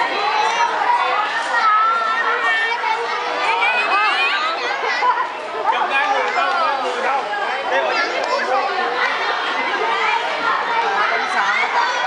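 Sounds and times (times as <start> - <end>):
children's voices: 0.0 - 12.0
people chattering: 0.0 - 12.0.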